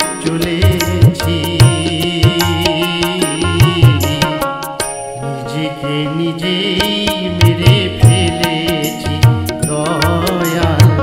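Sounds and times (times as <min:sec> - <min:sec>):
sharp percussive strikes: 0:00.0 - 0:05.4, 0:06.8 - 0:11.0
folk song music: 0:00.0 - 0:11.0.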